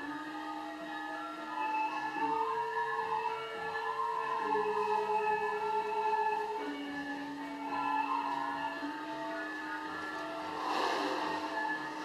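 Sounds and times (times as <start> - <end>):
gamelan music: 1.3 - 12.0.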